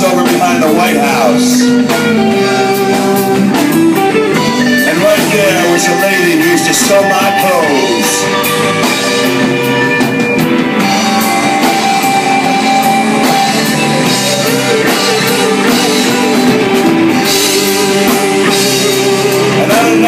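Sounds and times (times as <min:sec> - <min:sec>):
drum kit with cymbals: 0:00.0 - 0:20.0
electric guitars: 0:00.0 - 0:20.0.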